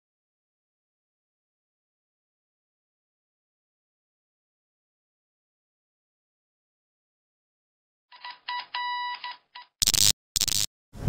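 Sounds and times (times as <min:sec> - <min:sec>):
short electronic beeps: 0:08.2 - 0:10.7
static hiss bursts: 0:09.8 - 0:10.7.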